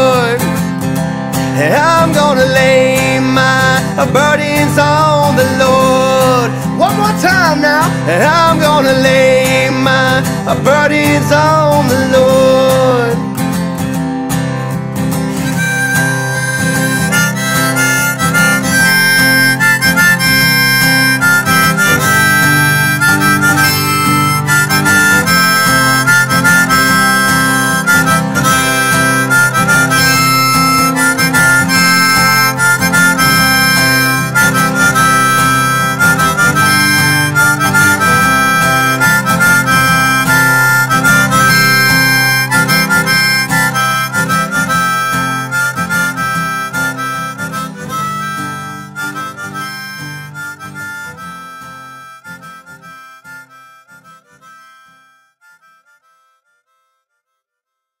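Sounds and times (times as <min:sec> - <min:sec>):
instrumental backing music: 0:00.0 - 0:57.2
harmonica playing: 0:00.0 - 0:57.6.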